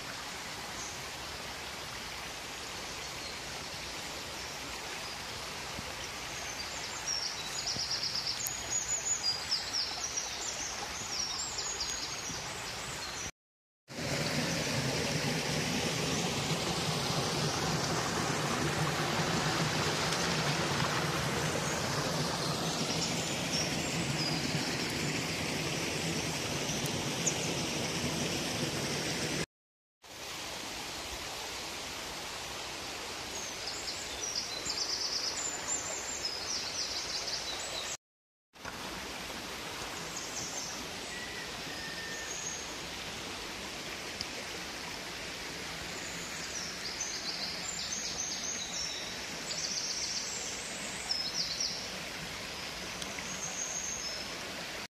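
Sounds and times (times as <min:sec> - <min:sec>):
stream running over rocks: 0:00.0 - 0:13.3, 0:13.9 - 0:38.0, 0:38.6 - 0:54.9.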